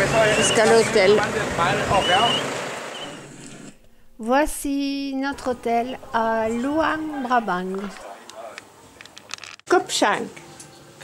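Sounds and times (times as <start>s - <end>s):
outdoor traffic noise: 0.0s - 11.0s
person speaking: 3.8s - 8.6s.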